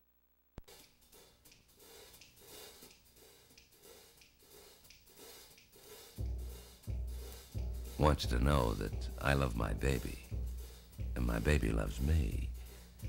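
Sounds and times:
percussion ticks: 0.6 - 13.0
low bass notes: 7.6 - 12.6.

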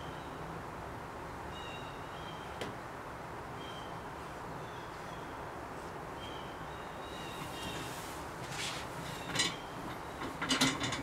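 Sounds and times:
rattling handling scrapes and clicks: 7.7 - 11.0.

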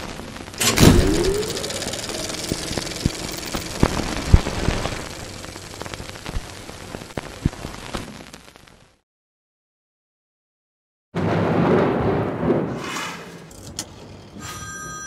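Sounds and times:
short rising tone: 0.6 - 6.2
crackling hissing swell: 0.8 - 8.8.

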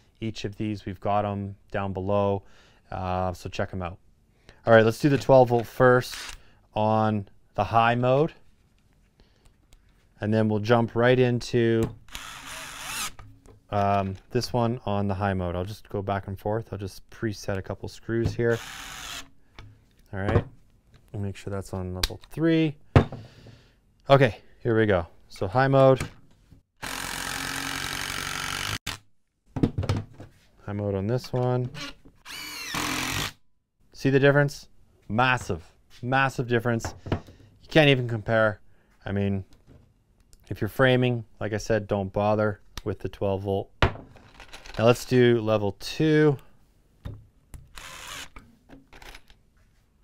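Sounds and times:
impact driver driving screw into wood: 12.1 - 13.3, 18.5 - 19.3, 26.8 - 29.0, 31.8 - 33.4, 47.6 - 48.4.

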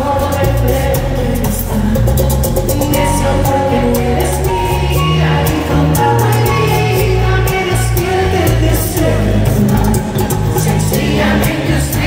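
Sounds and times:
live bachata band playing: 0.0 - 12.0
person singing: 0.0 - 12.0.

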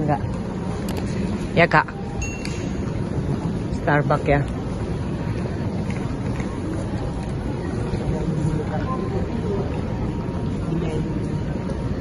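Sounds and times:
faint indistinct voices: 0.0 - 12.0
terminal hall rumble: 0.0 - 12.0.

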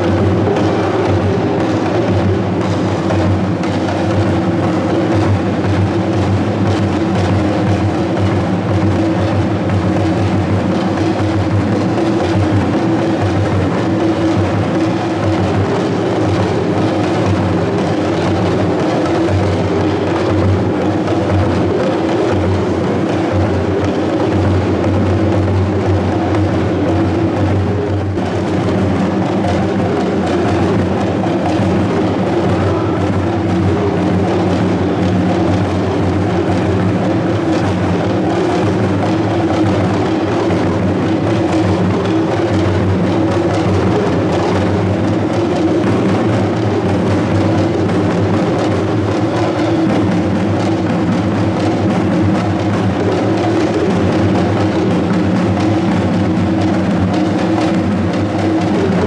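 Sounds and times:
barrel drums beating: 0.0 - 59.0.

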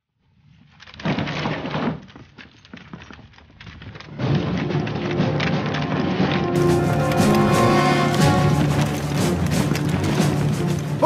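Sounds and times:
many footsteps on gravel: 2.0 - 11.0
low music bed: 4.2 - 11.0.

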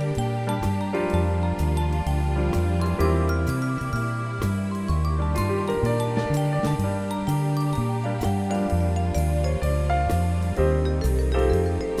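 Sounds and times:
electric bass line: 0.0 - 12.0.

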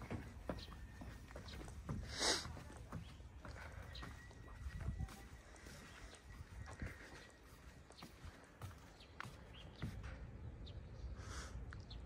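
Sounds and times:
footsteps on wooden deck: 0.0 - 10.8.

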